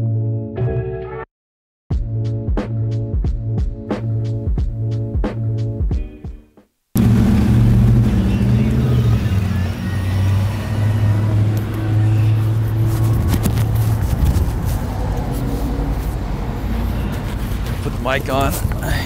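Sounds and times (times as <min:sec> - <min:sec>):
vehicle engine humming: 0:07.0 - 0:19.0.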